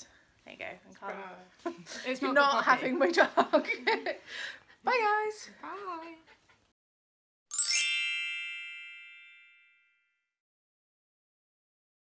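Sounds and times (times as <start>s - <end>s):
shimmering sparkle chime: 7.5s - 10.1s.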